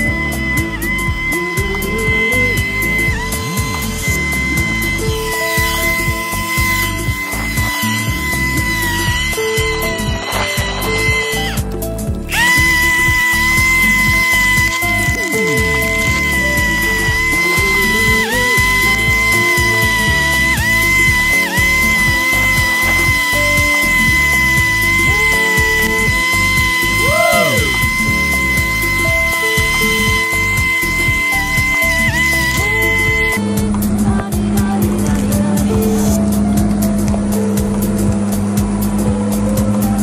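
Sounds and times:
background music with a beat: 0:00.0 - 0:40.0
electric lawn mower whine: 0:00.0 - 0:40.0.

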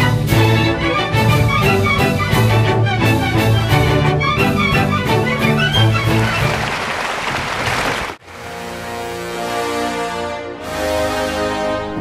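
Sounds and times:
large audience applauding: 0:05.6 - 0:08.2
orchestra chord: 0:08.2 - 0:12.0.

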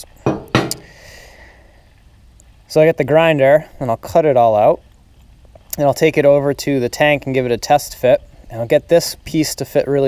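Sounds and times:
steel tube knocking on steel plate: 0:00.3 - 0:00.8.

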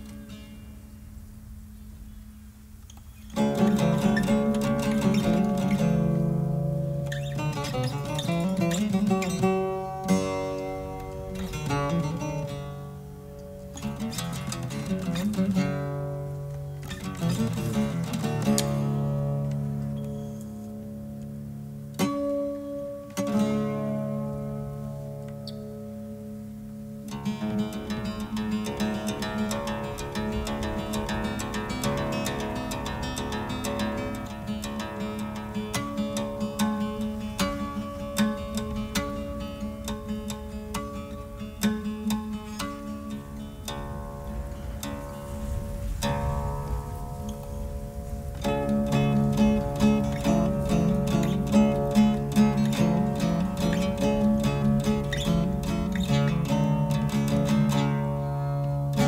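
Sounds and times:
plucked lute melody: 0:00.0 - 0:59.0.

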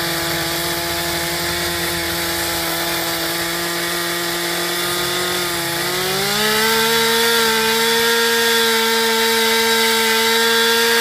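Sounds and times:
chainsaw carving wood: 0:00.0 - 0:11.0.

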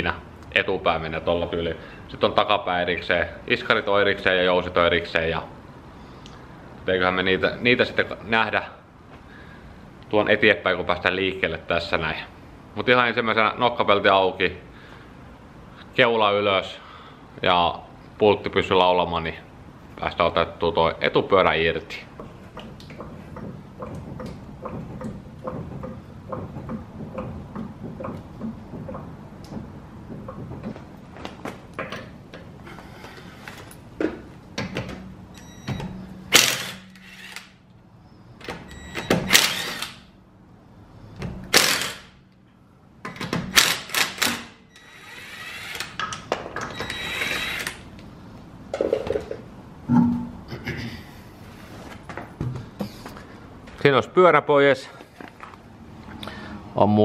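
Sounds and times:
impact wrench bursts: 0:35.8 - 0:37.6, 0:38.8 - 0:40.1, 0:41.4 - 0:42.2, 0:43.4 - 0:46.0, 0:46.7 - 0:47.8.

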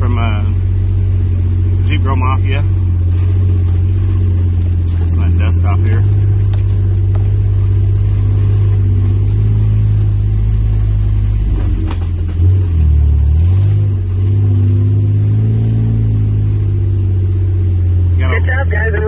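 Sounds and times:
jeep engine droning: 0:00.0 - 0:19.0.

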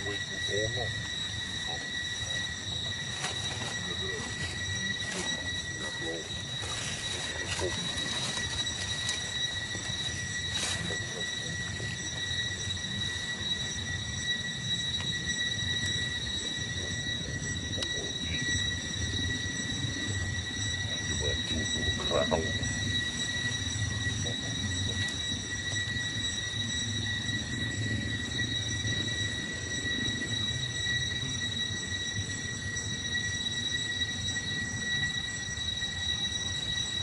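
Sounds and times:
faint wavering calls: 0:00.0 - 0:37.0
steady high-pitched whine: 0:00.0 - 0:37.0.

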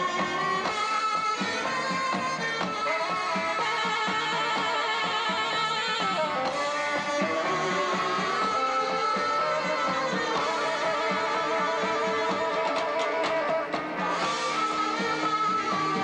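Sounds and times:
electric guitar: 0:00.0 - 0:16.0
live band music: 0:00.0 - 0:16.0.

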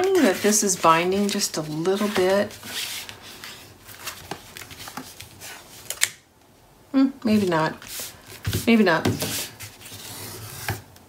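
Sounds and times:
cardstock rustling and sliding: 0:00.0 - 0:06.1, 0:07.4 - 0:10.8.

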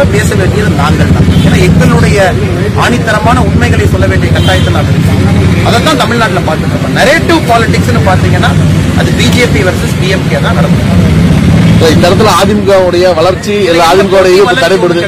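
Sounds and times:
man speaking into microphones: 0:00.0 - 0:15.0.

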